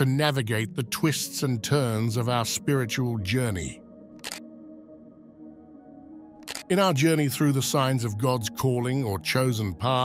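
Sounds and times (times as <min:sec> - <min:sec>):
soft ambient music: 0:00.0 - 0:10.0.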